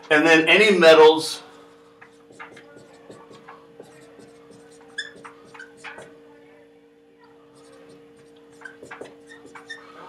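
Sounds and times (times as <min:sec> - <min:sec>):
marker writing on whiteboard: 0:01.5 - 0:06.2, 0:07.4 - 0:10.0
marker tip squeak: 0:02.0 - 0:06.1, 0:07.6 - 0:10.0.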